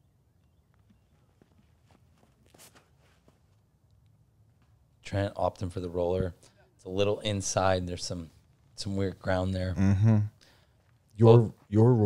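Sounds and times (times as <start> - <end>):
footsteps on concrete: 0.7 - 3.6.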